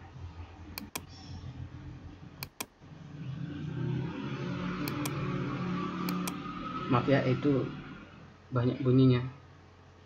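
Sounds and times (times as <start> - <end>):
computer mouse clicks: 0.8 - 1.3, 2.4 - 2.7, 4.8 - 5.2, 6.1 - 6.4
motor vehicle engine: 1.4 - 8.8.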